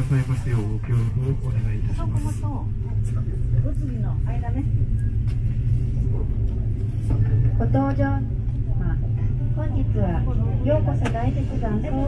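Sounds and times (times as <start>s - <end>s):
ropeway cabin rumble: 0.0s - 12.0s.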